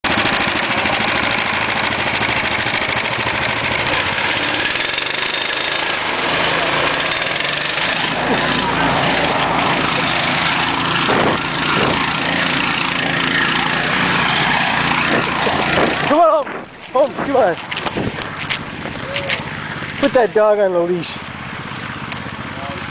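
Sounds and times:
gasoline engines running: 0.0 - 22.9.

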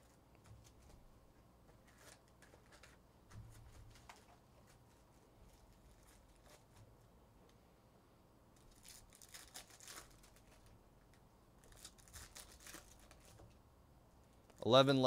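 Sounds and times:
foil wrappers crinkling: 1.7 - 6.9, 8.6 - 13.6.

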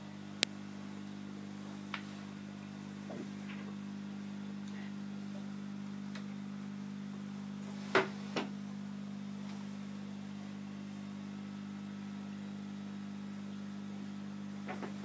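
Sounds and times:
aquarium equipment humming: 0.0 - 15.0.

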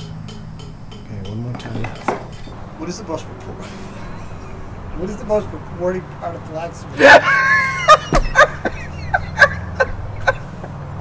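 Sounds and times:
iron tools clinking on anvil: 0.0 - 4.0
sharp metallic strike: 0.0 - 4.0.

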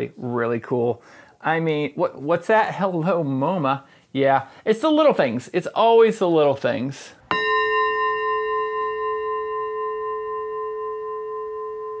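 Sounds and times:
metal chime ringing: 7.2 - 12.0.

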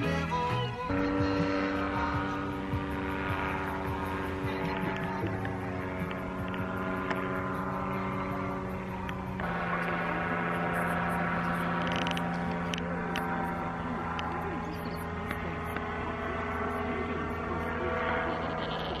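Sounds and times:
paramotor engine droning: 0.0 - 19.0.

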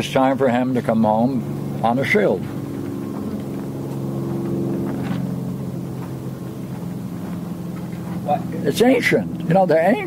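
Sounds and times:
low engine hum: 0.0 - 10.0.

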